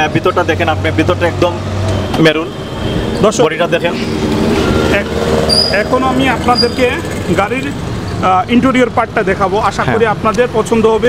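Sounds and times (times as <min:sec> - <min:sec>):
man talking: 0:00.0 - 0:02.6, 0:03.2 - 0:04.1, 0:04.8 - 0:11.0
street noise hum: 0:00.0 - 0:11.0.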